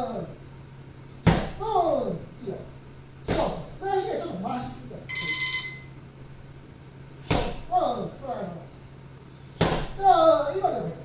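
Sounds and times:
electronic timer beep: 5.1s - 6.0s.

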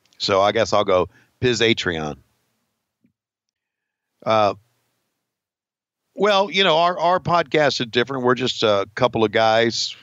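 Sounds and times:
man speaking: 0.2s - 2.2s, 4.2s - 4.6s, 6.2s - 10.0s.

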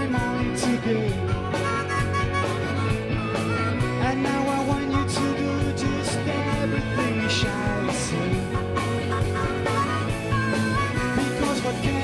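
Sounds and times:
steady drum beat: 0.0s - 12.0s
strummed electric guitar: 0.0s - 12.0s
harmonica playing held notes: 0.2s - 5.3s, 6.3s - 12.0s.

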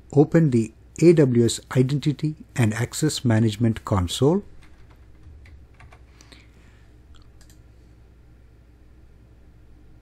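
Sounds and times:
steady low hum: 0.0s - 10.0s
computer keyboard keystrokes: 4.6s - 6.3s, 7.2s - 7.6s.

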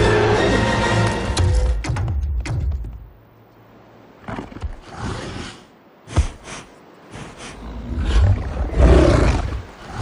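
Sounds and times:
beast growling and roaring: 7.5s - 10.0s.

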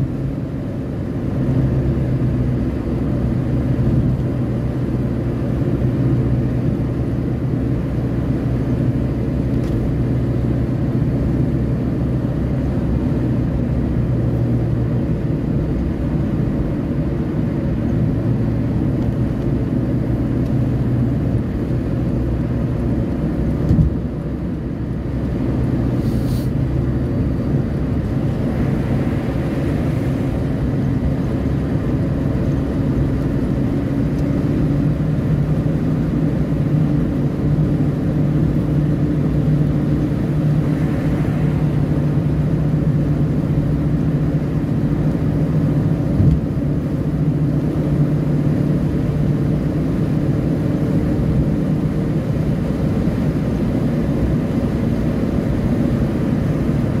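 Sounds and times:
car engine and tyre drone: 0.0s - 57.0s.

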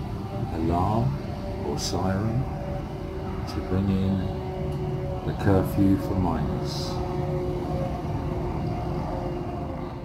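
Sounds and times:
low rumble of city noise: 0.0s - 10.0s
siren steady held tone: 0.0s - 10.0s.

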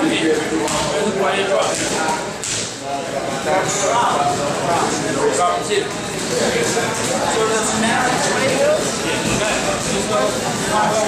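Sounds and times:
voices in gym: 0.0s - 11.0s.

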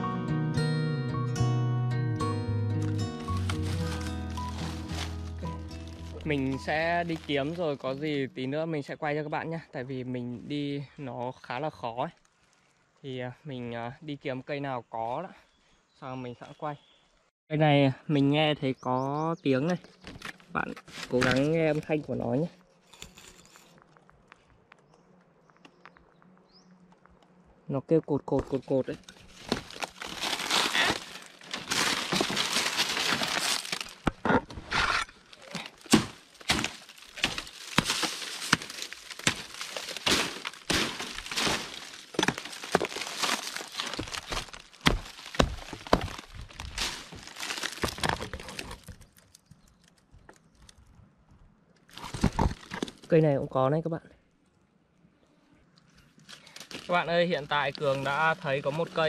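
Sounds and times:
dry palm fronds crackling: 2.8s - 8.3s, 28.8s - 34.2s, 35.1s - 50.8s, 56.2s - 59.0s.

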